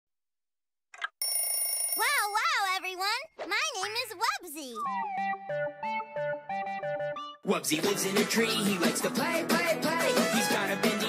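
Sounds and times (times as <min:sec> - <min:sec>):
cartoon alarm clock bell ringing: 0:01.2 - 0:03.0.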